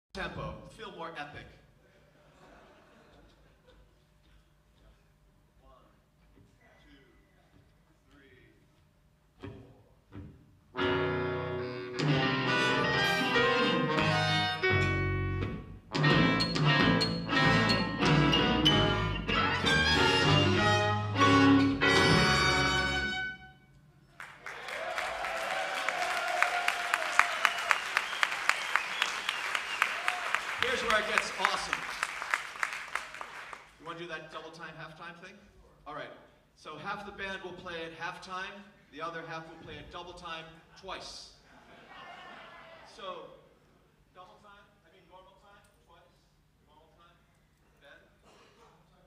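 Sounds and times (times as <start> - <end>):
horn-led rock band playing: 10.8 - 23.6
audience applauding: 24.2 - 33.8.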